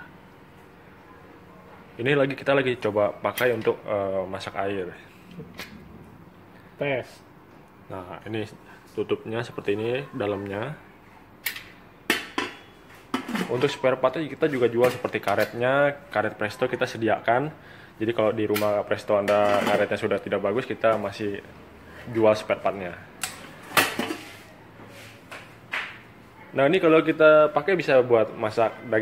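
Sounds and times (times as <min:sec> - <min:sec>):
metallic lid scrape: 0:19.3 - 0:19.9.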